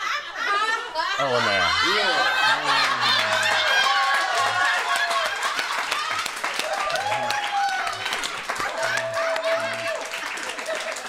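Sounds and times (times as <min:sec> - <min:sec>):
people talking and exclaiming: 0:00.0 - 0:11.0.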